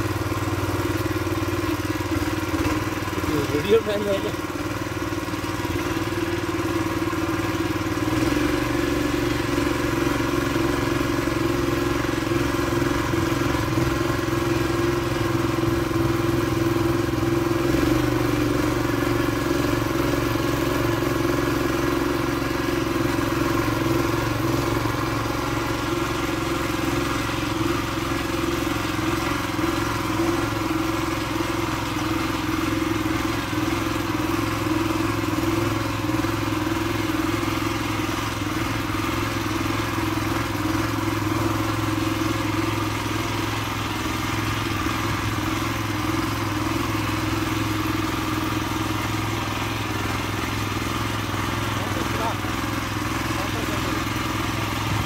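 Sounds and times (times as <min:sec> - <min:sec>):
tiller engine running: 0:00.0 - 0:55.0.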